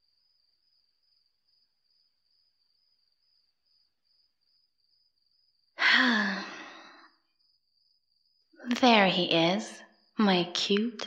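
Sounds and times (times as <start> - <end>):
crickets chirping: 0.0 - 11.0
woman sighing: 5.8 - 7.1.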